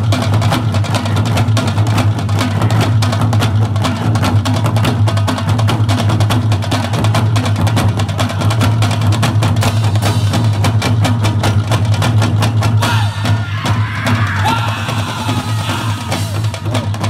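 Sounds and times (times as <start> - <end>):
barrel drums beaten with sticks: 0.0 - 17.0.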